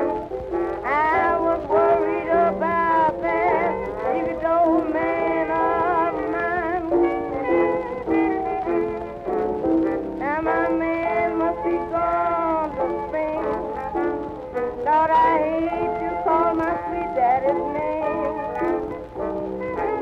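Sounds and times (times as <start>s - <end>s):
old jazz band recording: 0.0s - 20.0s.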